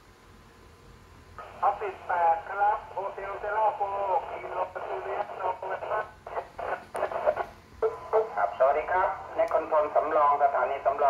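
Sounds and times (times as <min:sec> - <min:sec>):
person talking over radio: 0:01.4 - 0:11.0.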